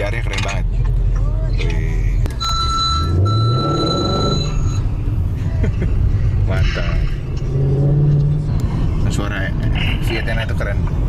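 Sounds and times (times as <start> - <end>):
high electronic beep: 2.3 - 5.0.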